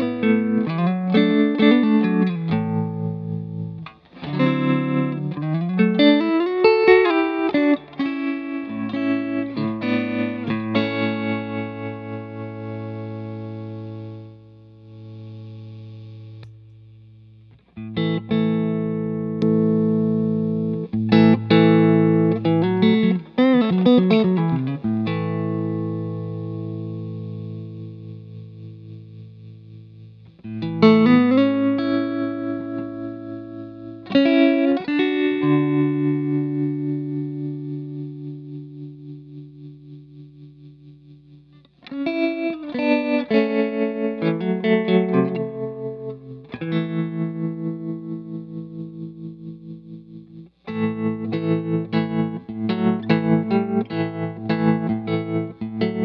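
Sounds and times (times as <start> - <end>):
electric guitar chords with tremolo: 0.0 - 56.0.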